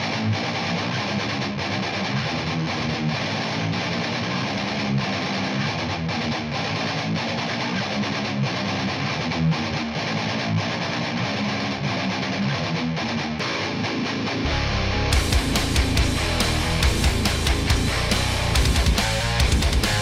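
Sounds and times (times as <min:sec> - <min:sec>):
bass guitar: 0:00.0 - 0:20.0
distorted electric guitar riff: 0:00.0 - 0:20.0
drums: 0:12.8 - 0:20.0.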